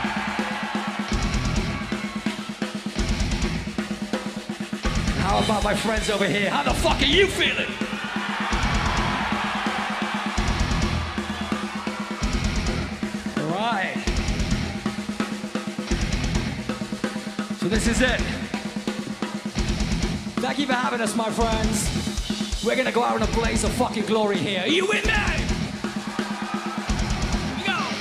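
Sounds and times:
drum kit playing steady beat: 0.0 - 28.0.

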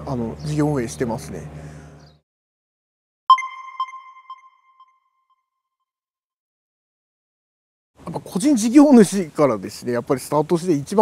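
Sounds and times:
bright chime echoing: 3.3 - 5.2.

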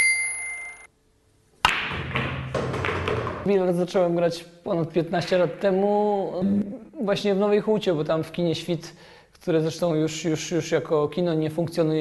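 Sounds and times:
bright bell ding: 0.0 - 0.9.

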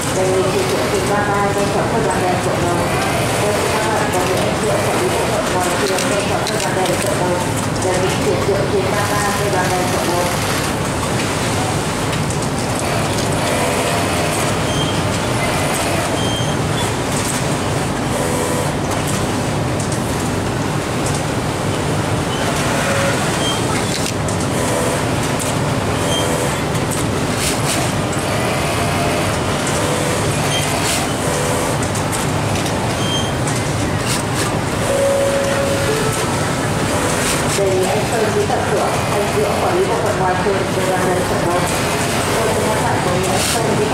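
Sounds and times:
industrial sewing machines running: 0.0 - 43.9.

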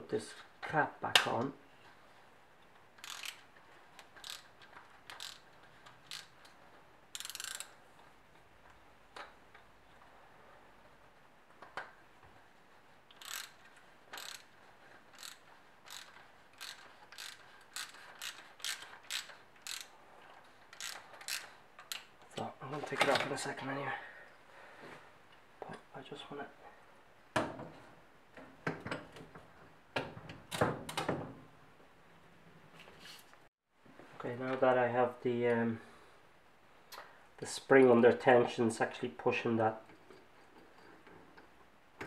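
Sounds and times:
socket ratchet clicking: 3.0 - 7.8, 13.1 - 14.5, 15.2 - 19.9, 20.8 - 22.1.

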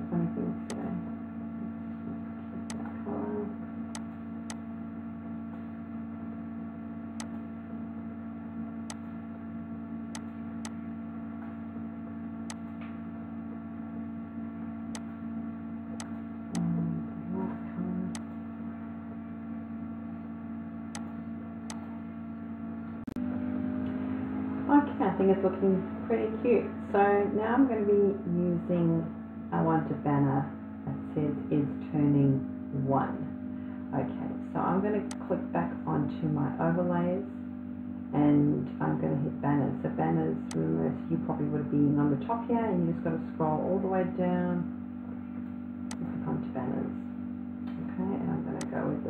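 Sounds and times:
electrical hum: 0.0 - 49.0.

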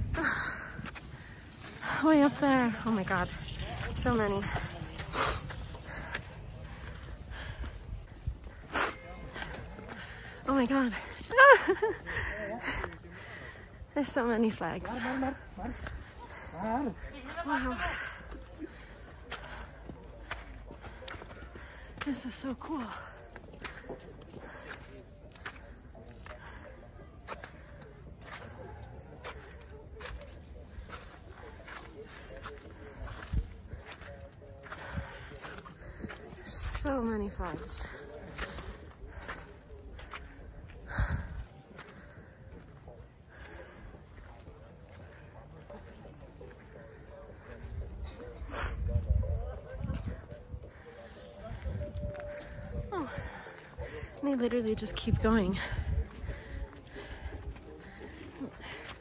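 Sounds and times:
footsteps on dirt path: 0.0 - 59.0
people talking in background: 0.0 - 59.0
person breathing hard: 55.6 - 59.0.

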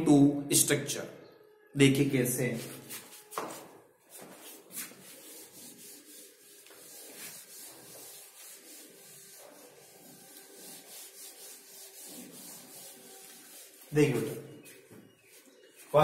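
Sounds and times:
duster scrubbing whiteboard: 2.6 - 16.0.

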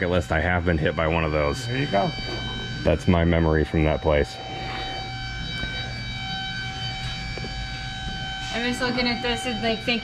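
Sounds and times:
high-pitched whine: 0.0 - 10.0
low rumbling hum: 0.0 - 10.0.

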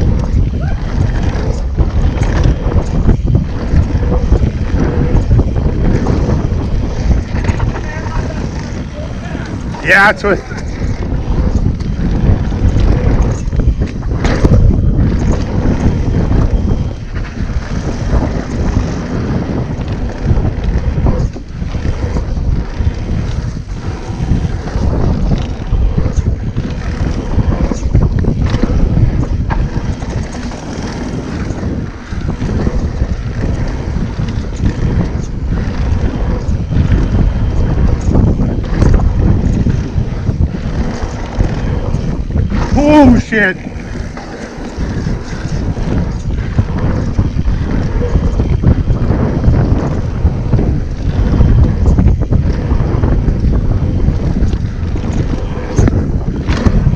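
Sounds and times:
bike knocks and rattles: 0.0 - 43.0, 43.6 - 56.9
bike tyres rumbling on dirt: 0.0 - 56.9
wind buffeting microphone: 0.0 - 56.9.

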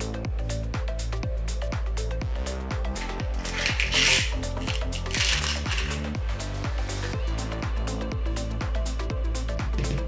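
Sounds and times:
electronic music with steady beat: 0.0 - 10.0
metal screws clattering on tabletop: 3.0 - 6.0.

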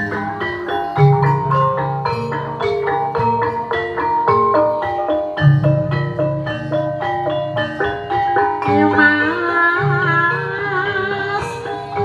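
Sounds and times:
gamelan metallophones and gongs: 0.0 - 12.0.

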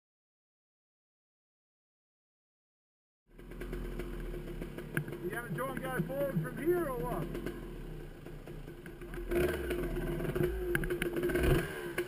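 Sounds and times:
dirt bike engine idling: 3.3 - 12.0
man talking: 5.2 - 7.4.

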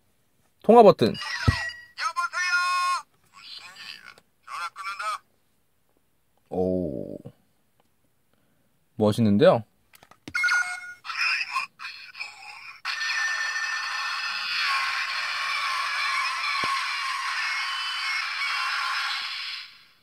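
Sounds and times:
toy beeps and clicks: 1.2 - 2.0, 10.3 - 11.2.

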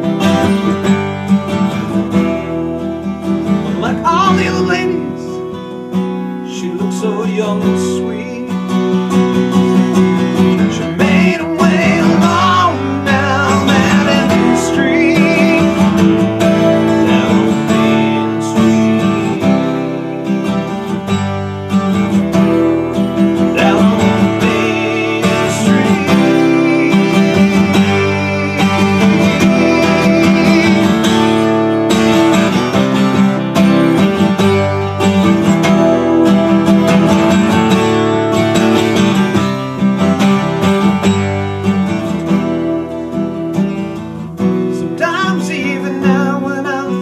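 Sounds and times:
acoustic guitar strumming: 0.0 - 47.0
man singing: 3.6 - 5.6, 6.4 - 8.8, 10.4 - 20.3, 23.2 - 32.7, 44.7 - 47.0.

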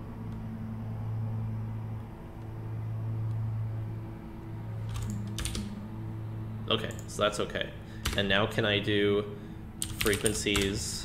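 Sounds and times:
steady low hum: 0.0 - 11.0
computer keyboard keystrokes: 4.9 - 5.7, 8.0 - 8.2, 9.8 - 10.7.

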